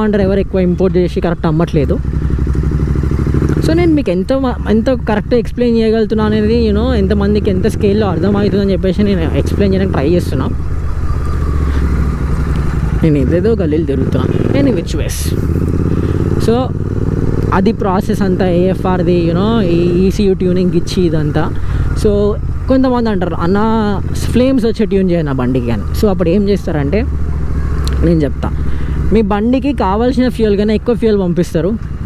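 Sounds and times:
person's voice: 0.0 - 2.1, 3.5 - 10.6, 13.0 - 16.8, 17.4 - 27.1, 27.9 - 31.8
motorcycle engine rumbling: 0.0 - 32.0
road and wind noise: 0.0 - 32.0.

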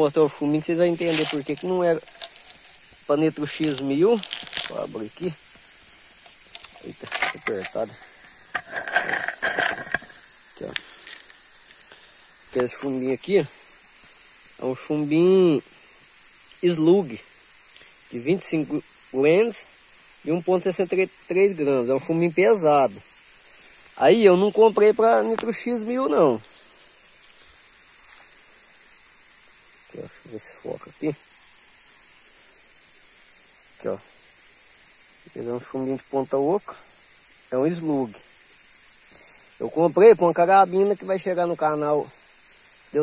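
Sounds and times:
high-pitched insect buzz: 0.0 - 43.0
tin lid scraping and squeaking: 0.9 - 4.9, 6.2 - 10.3.

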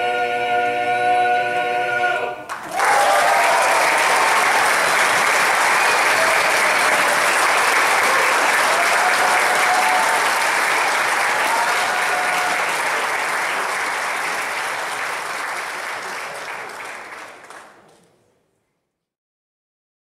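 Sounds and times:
audience applauding: 2.5 - 18.1.

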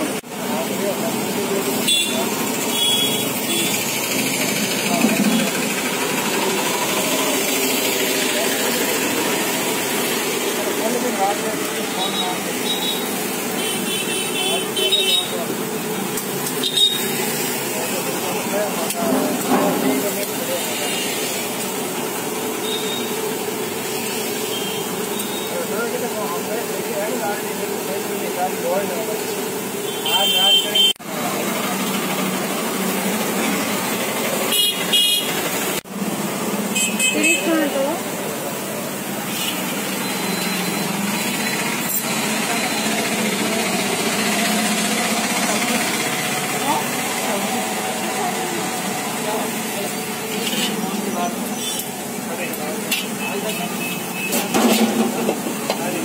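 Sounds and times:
voices: 0.0 - 35.5, 36.8 - 56.0
vehicle engines: 0.0 - 56.0
car horn honking: 1.8 - 3.9, 12.0 - 15.5, 16.6 - 17.2, 22.6 - 23.3, 24.4 - 25.6, 29.8 - 31.0, 34.4 - 35.4, 36.7 - 37.7
deep-frying sizzle in oil: 15.4 - 30.1, 37.7 - 56.0.

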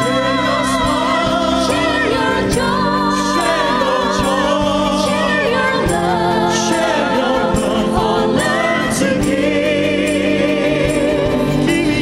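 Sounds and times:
instrumental backing: 0.0 - 12.0
vocal group singing in harmony: 0.0 - 12.0.

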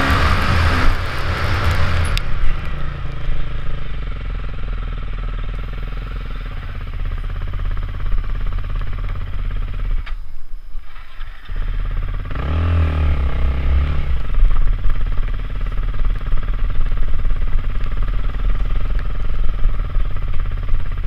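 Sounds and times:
motorcycle engine revving: 0.0 - 10.1, 10.9 - 21.0.

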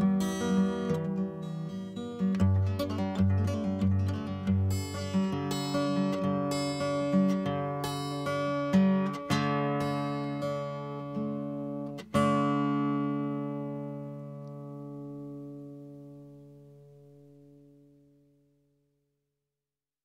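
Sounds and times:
acoustic guitar playing: 0.0 - 18.8.

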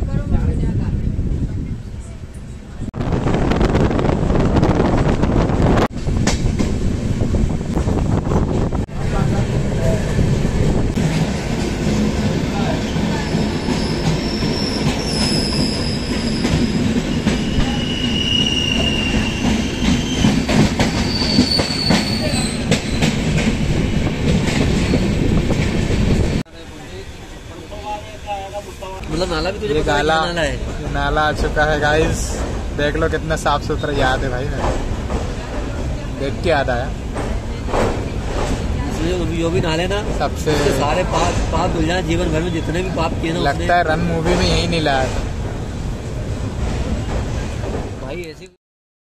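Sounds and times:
train wheel and rail rumble: 0.0 - 48.5
high wheel squeals: 13.2 - 23.2.

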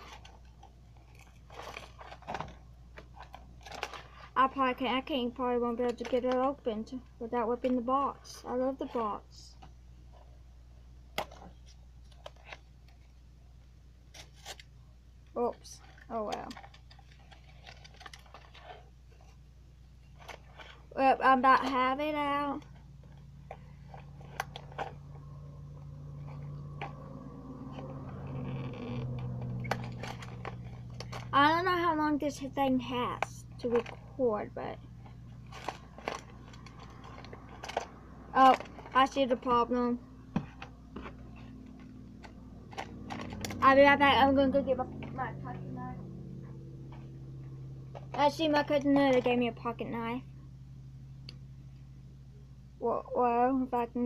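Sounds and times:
packaging clicks and rustles: 0.0 - 6.7, 11.1 - 13.2, 15.6 - 19.4, 20.0 - 21.0, 22.5 - 31.4, 33.1 - 34.2, 34.8 - 39.5, 40.3 - 43.6.

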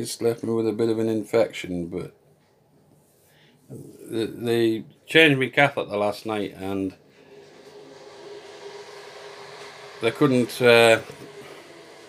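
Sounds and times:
machine hum with held tone: 7.0 - 12.0.

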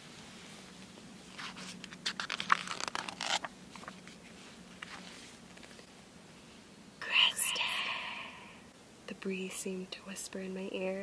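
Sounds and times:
woman whispering breathily: 7.0 - 8.6.

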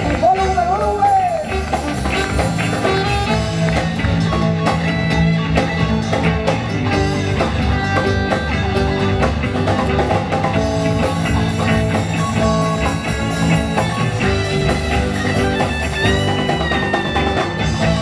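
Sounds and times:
drum kit beat: 0.0 - 18.0
electric guitar: 0.0 - 18.0.

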